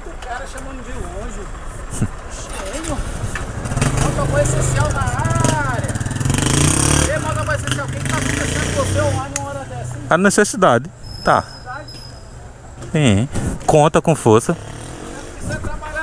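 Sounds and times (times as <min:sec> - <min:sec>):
people talking: 0:00.0 - 0:03.1, 0:03.9 - 0:06.0, 0:07.0 - 0:11.9, 0:12.9 - 0:16.0
motorcycle engine rumbling: 0:00.0 - 0:16.0.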